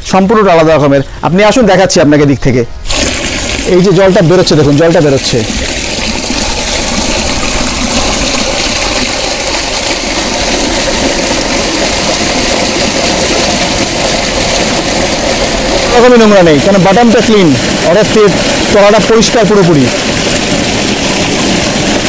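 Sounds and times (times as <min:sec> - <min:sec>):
water gushing into drain channel: 0:02.8 - 0:22.0.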